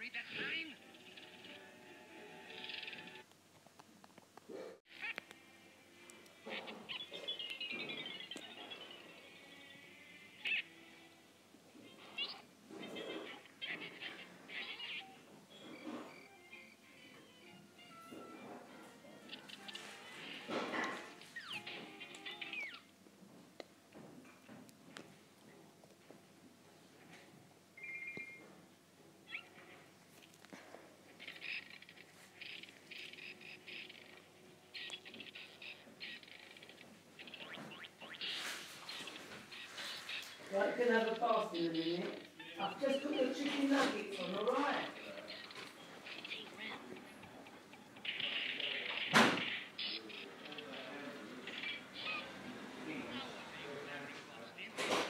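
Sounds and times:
high-pitched cartoon squeaks: 0:00.2 - 0:03.2, 0:04.9 - 0:05.2, 0:06.4 - 0:11.1, 0:11.8 - 0:22.9, 0:29.2 - 0:29.8, 0:31.1 - 0:53.6.

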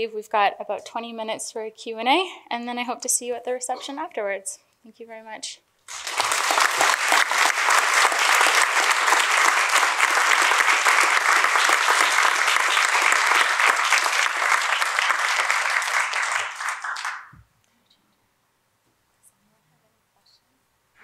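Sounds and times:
audience applauding: 0:05.9 - 0:17.4.

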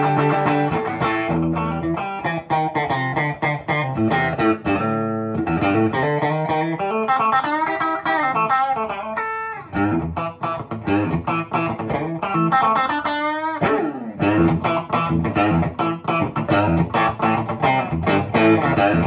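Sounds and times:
clean electric guitar lead: 0:00.0 - 0:19.0.

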